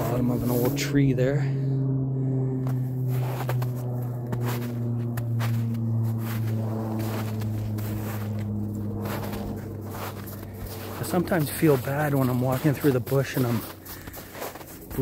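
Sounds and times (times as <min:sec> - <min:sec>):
footsteps crunching through snow: 0:00.0 - 0:00.9, 0:02.6 - 0:15.0
steady low drone: 0:00.0 - 0:15.0.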